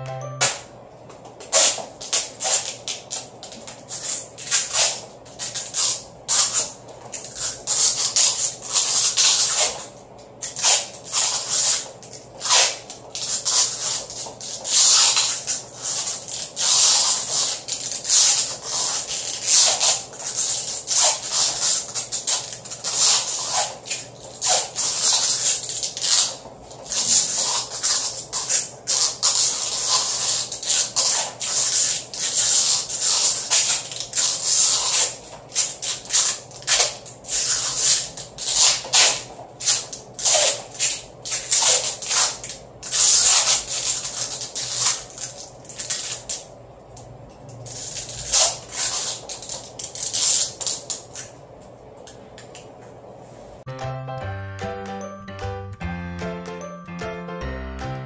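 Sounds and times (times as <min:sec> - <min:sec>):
rubbing and handling noise: 0:01.3 - 0:46.5
adhesive tape ripping off roll: 0:01.4 - 0:46.5, 0:47.6 - 0:51.4.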